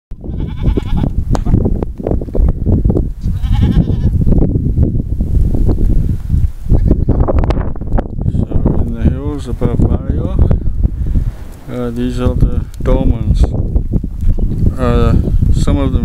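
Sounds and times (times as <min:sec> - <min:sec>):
goats bleating: 0:00.2 - 0:01.1, 0:03.2 - 0:04.2
steady low rumble: 0:00.2 - 0:16.0.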